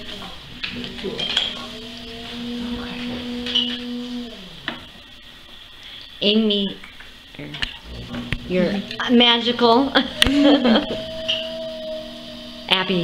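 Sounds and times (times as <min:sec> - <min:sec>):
potter's wheel spinning: 0:00.0 - 0:05.6, 0:07.6 - 0:13.0
steady hum: 0:00.0 - 0:13.0.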